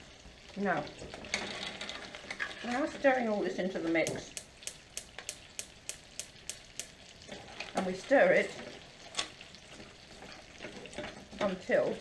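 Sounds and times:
spoon stirring thick mix in pan: 4.0 - 12.0.

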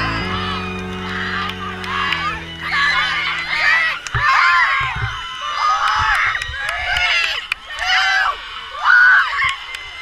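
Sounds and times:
girls cheering and shouting: 0.0 - 10.0
low thumps: 0.8 - 5.3.

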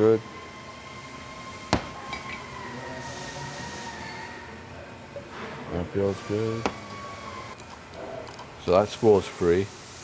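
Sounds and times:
faint shop hum: 0.0 - 10.0.

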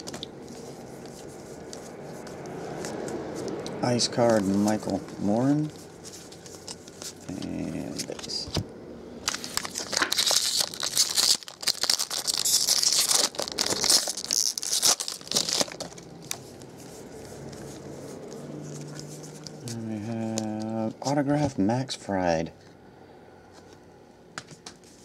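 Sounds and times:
foil wrapper tearing and crinkling: 9.3 - 16.5.

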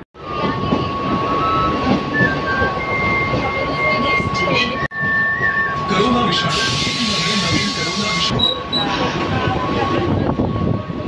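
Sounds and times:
train rumble: 0.2 - 11.0.

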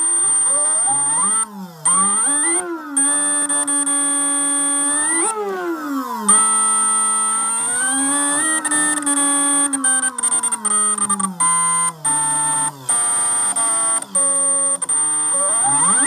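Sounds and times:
electric motor whining: 0.0 - 16.0
high-pitched whistle: 6.2 - 16.0.

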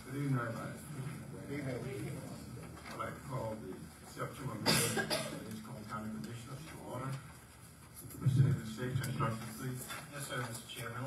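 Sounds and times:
quiet talk: 0.0 - 11.0
person coughing: 4.6 - 5.5.

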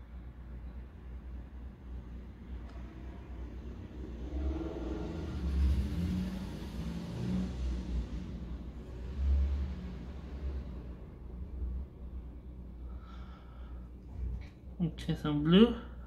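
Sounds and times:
low rumble of passing vehicle: 0.0 - 16.0.

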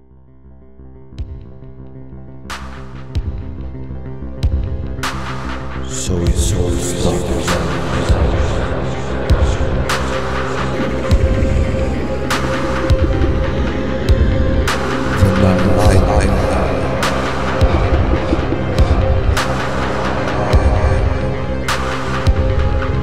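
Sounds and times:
droning synthesizer notes: 0.4 - 23.0
pulsing drum-machine beat: 10.9 - 22.8.

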